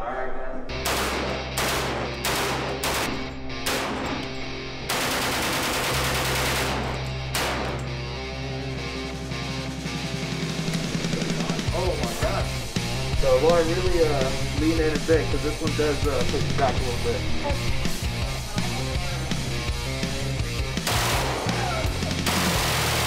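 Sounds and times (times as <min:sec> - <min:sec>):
automatic rifle bursts: 0:04.9 - 0:07.6, 0:20.9 - 0:21.6
music with steady beat: 0:05.0 - 0:23.0.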